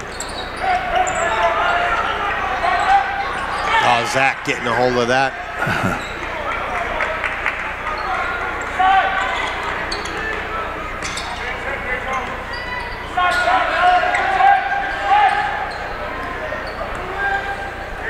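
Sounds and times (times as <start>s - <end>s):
crowd and player voices: 0.0s - 18.0s.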